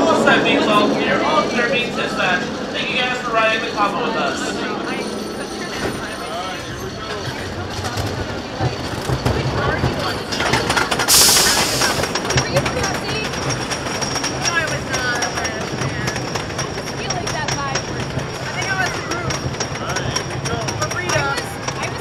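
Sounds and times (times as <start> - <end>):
roller coaster chain lift clicking: 1.1 - 22.0
loud hiss: 11.1 - 12.1.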